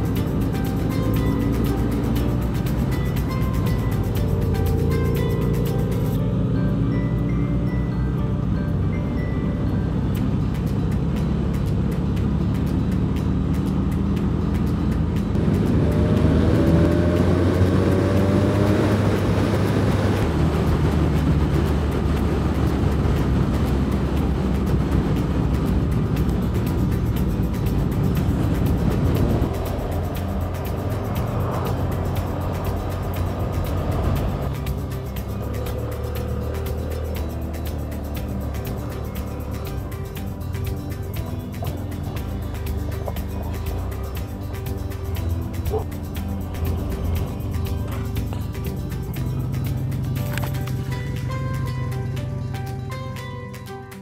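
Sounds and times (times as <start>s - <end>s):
motorcycle engine accelerating: 0.0s - 53.4s
background music: 0.0s - 54.0s
road noise: 0.0s - 54.0s.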